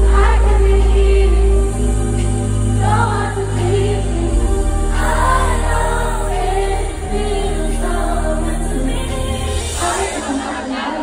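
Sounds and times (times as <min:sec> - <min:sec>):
sustained low chords: 0:00.0 - 0:10.1
woman singing into a microphone: 0:00.0 - 0:11.0.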